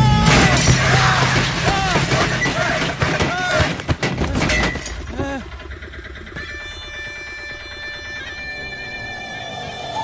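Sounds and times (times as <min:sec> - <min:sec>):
film score sustained high notes: 0:05.5 - 0:10.0.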